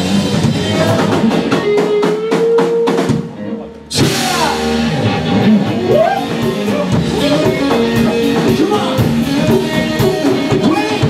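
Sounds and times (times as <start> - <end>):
live rock band: 0.0 - 11.0
fast drum hits: 4.0 - 5.1, 5.7 - 11.0.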